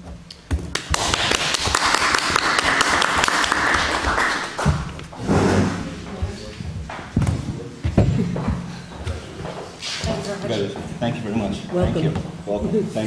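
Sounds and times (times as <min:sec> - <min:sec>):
audience applauding: 0:00.7 - 0:05.0.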